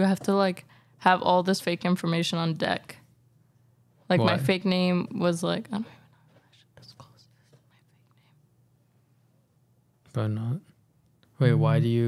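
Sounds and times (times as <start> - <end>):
low hum: 3.2 - 5.3
faint whispered voice: 6.5 - 8.4.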